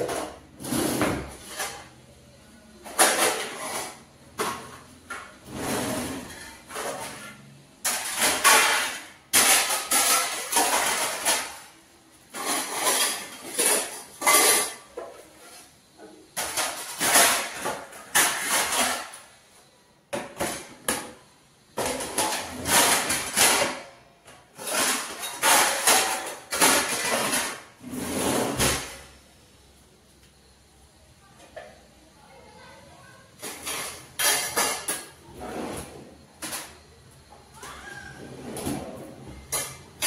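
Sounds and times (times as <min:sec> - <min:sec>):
kitchen drawer sliding: 0:00.0 - 0:01.8, 0:05.4 - 0:07.4, 0:26.5 - 0:29.1, 0:33.6 - 0:36.6, 0:38.2 - 0:39.8
steel utensils rattling: 0:12.3 - 0:15.0, 0:33.4 - 0:35.2.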